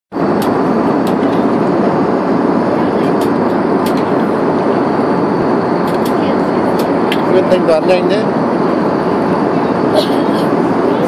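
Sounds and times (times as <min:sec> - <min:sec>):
airliner cabin rumble: 0:00.1 - 0:11.0.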